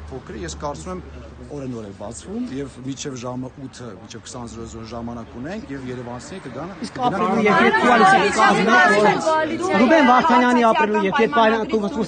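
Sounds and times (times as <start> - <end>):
man speaking: 0.1 - 12.0.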